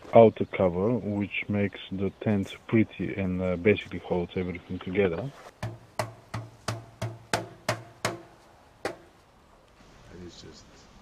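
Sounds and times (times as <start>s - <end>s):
percussive drum beats: 5.6s - 9.2s.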